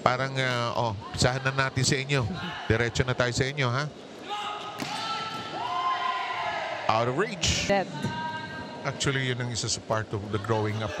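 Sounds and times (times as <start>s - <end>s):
volleyball being struck: 4.8s - 5.6s.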